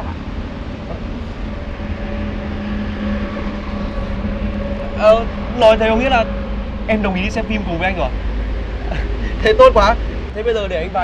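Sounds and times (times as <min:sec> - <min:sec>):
engine-like hum: 0:00.0 - 0:11.0
low rumble of vehicles: 0:00.0 - 0:11.0.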